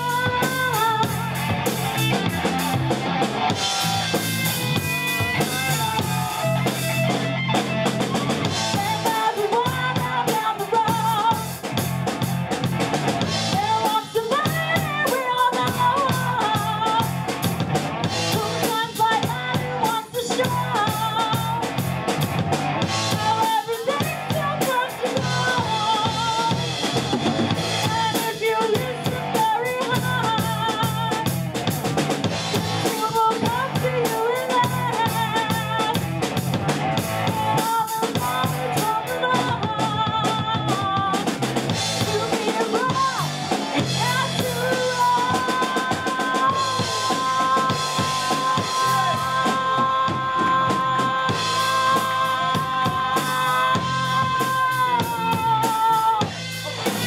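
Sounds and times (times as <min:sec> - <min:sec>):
female lead vocals: 0:00.0 - 0:02.6, 0:04.0 - 0:11.9, 0:13.2 - 0:17.4, 0:18.0 - 0:21.9, 0:22.7 - 0:36.5, 0:37.1 - 0:57.0
bass guitar: 0:00.0 - 0:57.0
drum kit beat: 0:00.0 - 0:57.0
electric guitar: 0:00.0 - 0:57.0.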